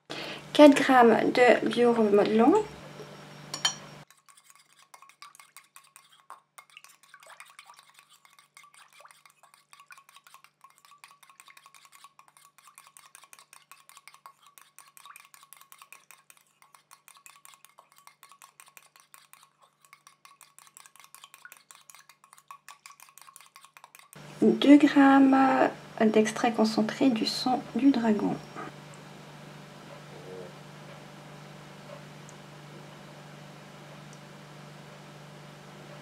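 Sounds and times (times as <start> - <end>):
wire whisk clicking against metal bowl: 9.2 - 24.2.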